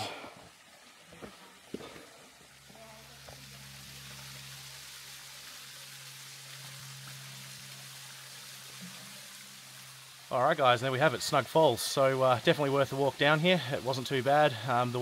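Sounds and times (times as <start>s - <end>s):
waterfall splashing into pool: 0.5s - 15.0s
low steady hum: 2.1s - 11.4s.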